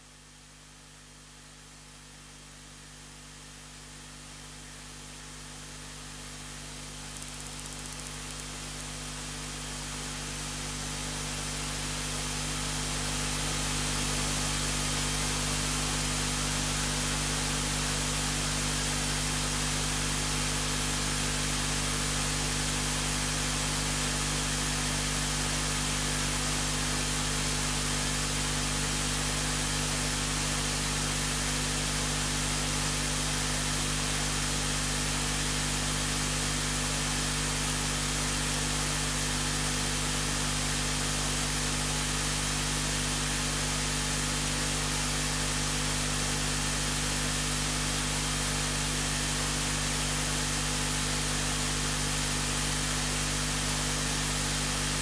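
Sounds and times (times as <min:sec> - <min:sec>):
low electrical hum: 0:06.4 - 0:09.1.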